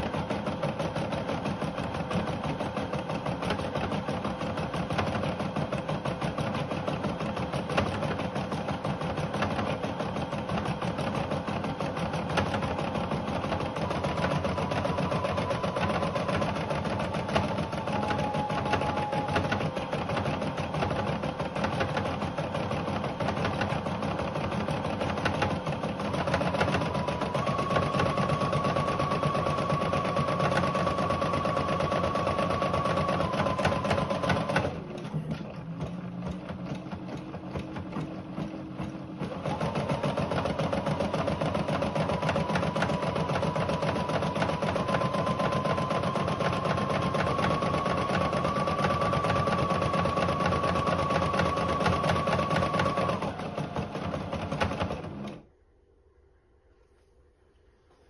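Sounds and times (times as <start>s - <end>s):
motor hum: 0.0s - 55.5s.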